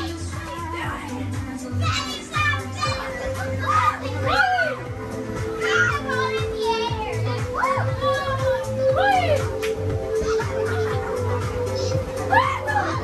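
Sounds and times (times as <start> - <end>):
music: 0.0 - 13.0
children squealing and calling out: 1.7 - 13.0.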